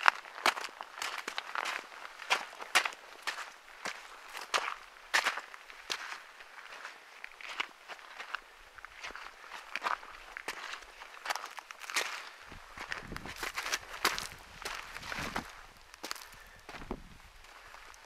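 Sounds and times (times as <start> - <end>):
footsteps on gravel: 0.0 - 18.0.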